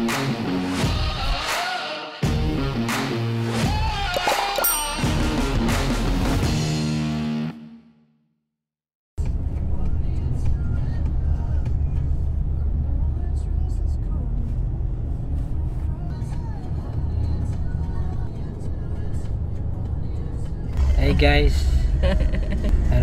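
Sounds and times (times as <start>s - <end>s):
car cabin road and engine rumble: 9.2s - 23.0s.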